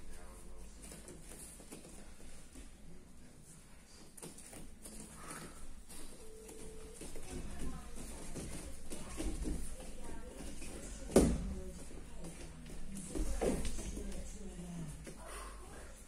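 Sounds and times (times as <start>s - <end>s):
faint indistinct voices: 0.0s - 16.0s
bodies thudding on gym mats: 8.1s - 12.3s.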